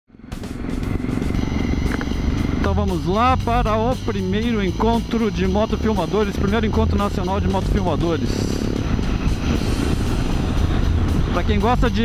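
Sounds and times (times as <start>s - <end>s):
background music: 0.1s - 12.0s
motorcycle engine running: 0.1s - 12.0s.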